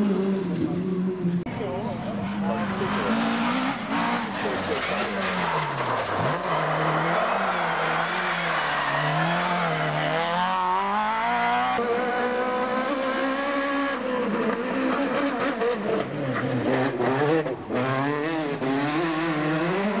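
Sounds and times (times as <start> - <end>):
rally car engines revving: 0.0 - 20.0.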